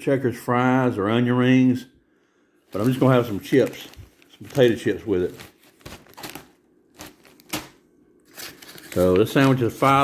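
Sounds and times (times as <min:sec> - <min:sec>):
plastic chip bag crinkling: 0:02.7 - 0:10.0.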